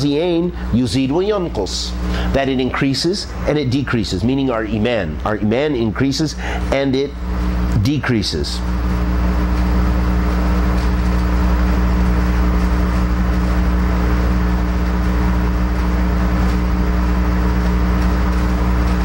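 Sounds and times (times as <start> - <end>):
loud machine drone: 0.0 - 19.0.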